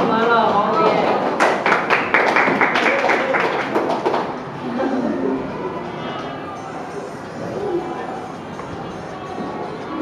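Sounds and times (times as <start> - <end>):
children chattering: 4.2 - 10.0.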